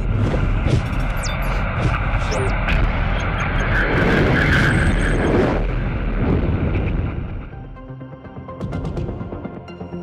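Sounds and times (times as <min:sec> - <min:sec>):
deep rumble: 0:00.0 - 0:07.8.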